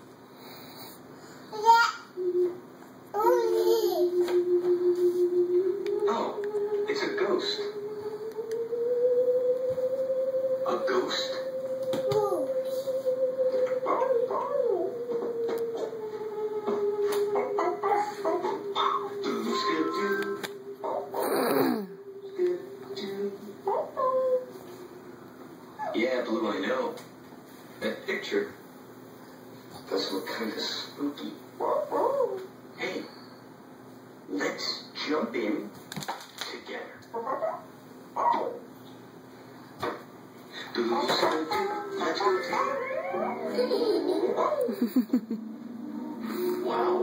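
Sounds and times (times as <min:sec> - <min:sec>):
faint steady hum: 0:00.0 - 0:47.0
pulsing synthetic musical tone: 0:03.3 - 0:25.1, 0:42.0 - 0:47.0.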